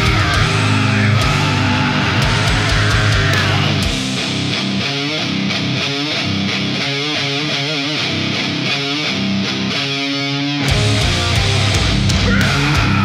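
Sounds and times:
drums and bass: 0:00.0 - 0:07.6, 0:10.6 - 0:13.0
distorted electric guitars: 0:00.0 - 0:13.0.

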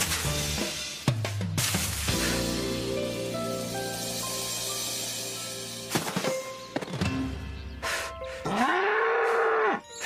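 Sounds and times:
bull mooing: 0:08.5 - 0:09.8.

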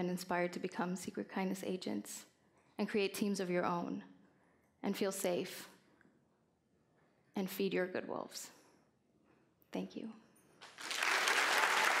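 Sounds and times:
audience applause: 0:10.6 - 0:12.0.

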